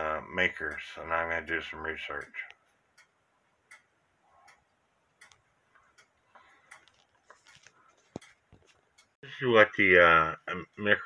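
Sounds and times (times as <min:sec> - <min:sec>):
cuckoo clocks ticking: 0:00.0 - 0:11.0.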